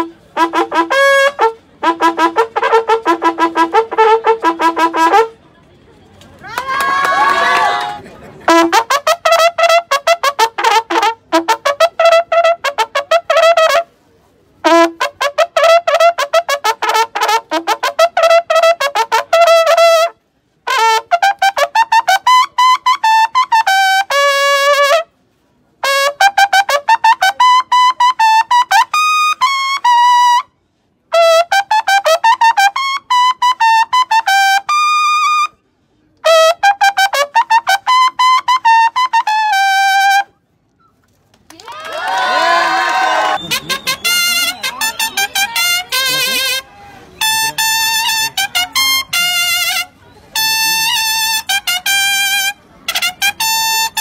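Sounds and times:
bugle calls with rapid tongued notes: 0.0s - 5.3s, 6.6s - 13.9s, 14.6s - 25.1s, 25.8s - 30.5s, 31.1s - 35.5s, 36.2s - 41.0s, 41.8s - 54.0s.

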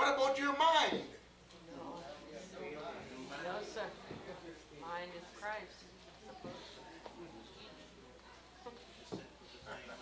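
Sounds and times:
low electrical buzzing hum: 0.0s - 10.0s.

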